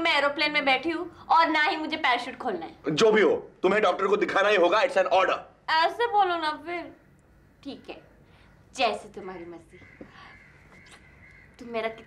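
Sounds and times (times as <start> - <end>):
woman speaking: 0.0 - 2.8, 5.7 - 7.0, 7.6 - 8.1, 8.7 - 9.8, 11.6 - 12.0
faint high-pitched hum: 0.0 - 12.0.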